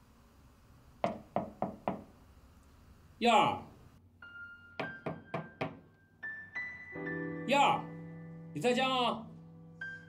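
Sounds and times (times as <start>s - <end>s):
knocks on a door: 1.0s - 2.1s, 4.8s - 5.9s.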